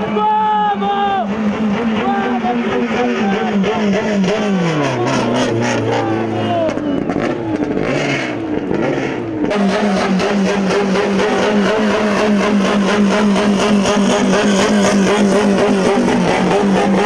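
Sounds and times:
race car engine running: 0.0 - 17.0
excited voice: 5.0 - 7.0.

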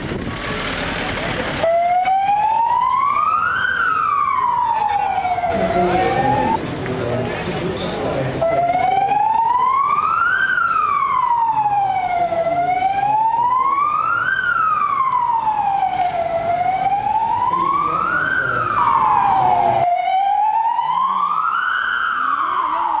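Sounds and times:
background noise: 0.0 - 23.0
ambulance siren wailing: 1.6 - 6.6, 8.4 - 23.0.

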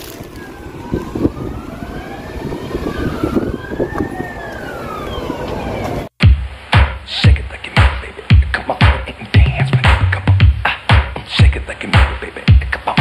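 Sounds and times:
emergency siren wailing: 0.0 - 6.1
traffic rumble: 0.0 - 13.0.

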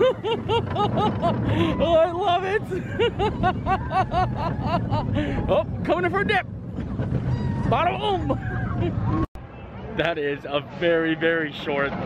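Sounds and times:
person laughing: 0.0 - 5.6
low rumble of roller coaster: 0.0 - 12.0.

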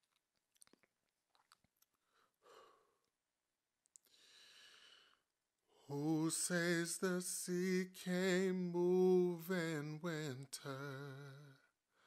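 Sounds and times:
soft breath drawn in: 4.1 - 5.3.

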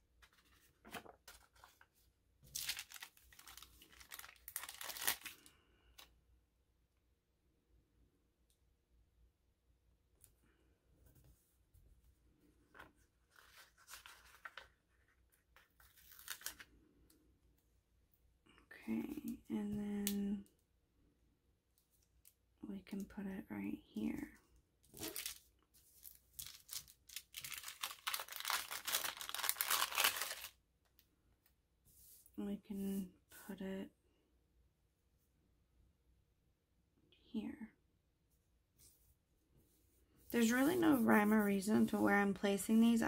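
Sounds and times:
paper sheets rustling and crinkling: 0.0 - 5.4, 12.8 - 16.7, 24.9 - 30.5, 40.4 - 42.1.

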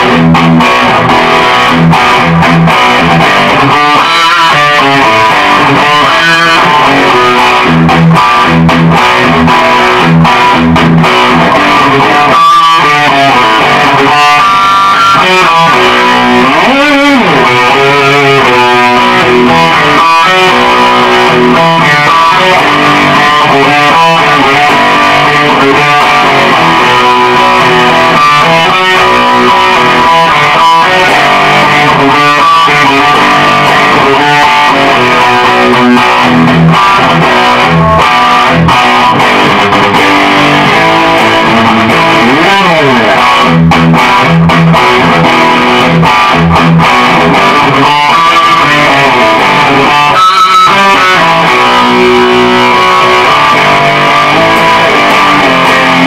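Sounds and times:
distorted electric guitar: 0.0 - 56.0.

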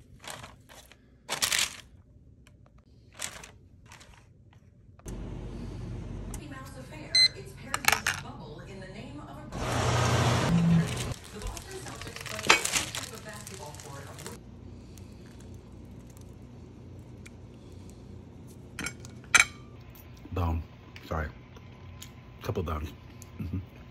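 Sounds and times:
kitchen timer beeping: 7.1 - 7.4
kitchen clatter: 10.5 - 14.4.

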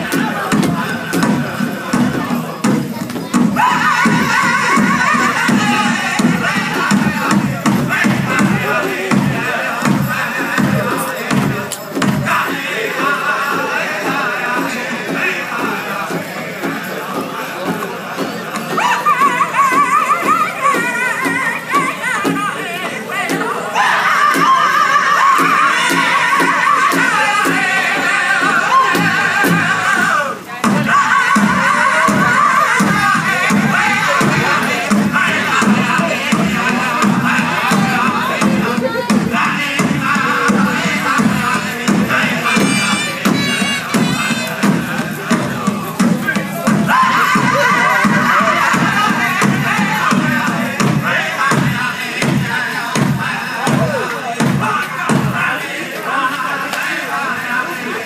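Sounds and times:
large drum beating: 0.0 - 55.6
singers with high voices: 0.0 - 58.0.

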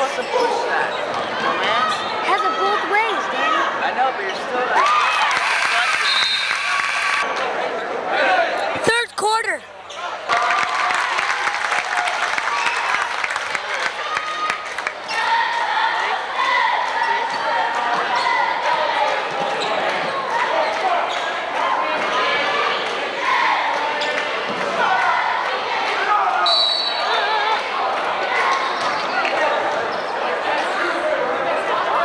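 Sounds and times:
crowd calling and talking: 0.0 - 32.0
referee's whistle blast: 5.4 - 7.2.

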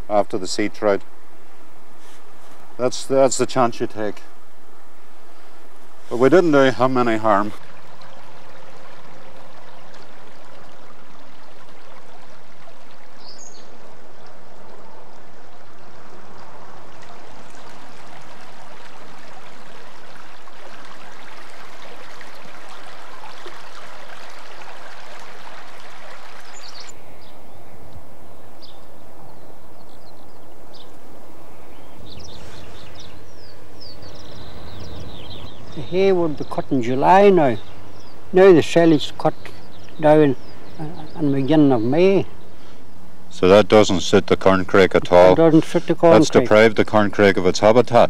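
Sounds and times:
bird chirps: 13.2 - 14.4, 26.4 - 43.0.

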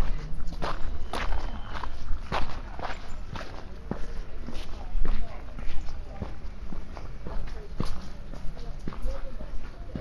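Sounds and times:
footsteps walking: 0.0 - 10.0.

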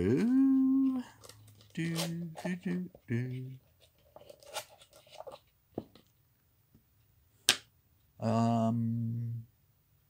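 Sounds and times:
cards rustling on a table: 0.8 - 6.1.

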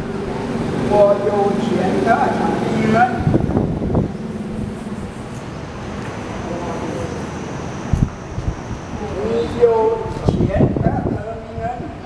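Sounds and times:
steady low hum: 0.0 - 11.5
man's voice: 0.9 - 3.4, 9.0 - 12.0.

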